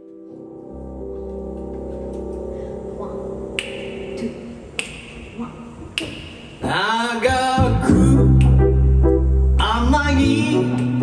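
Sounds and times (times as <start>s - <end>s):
held piano chord: 0.0s - 4.7s
soft low bass notes: 0.0s - 5.8s, 7.6s - 11.0s
finger snaps: 3.5s - 6.5s, 8.3s - 8.6s.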